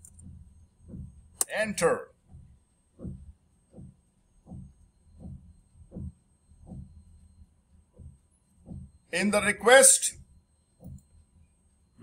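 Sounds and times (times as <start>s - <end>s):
dull low thumps: 0.0s - 9.6s.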